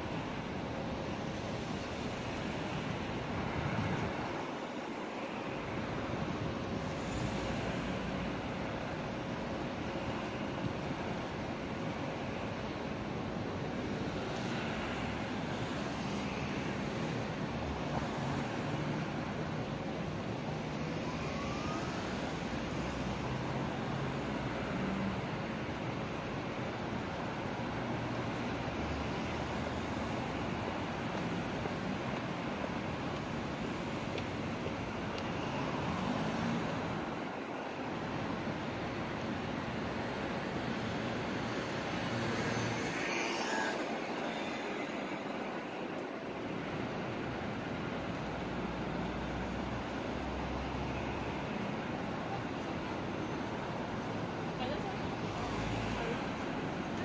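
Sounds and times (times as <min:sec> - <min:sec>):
cars driving past: 0:33.5 - 0:52.0.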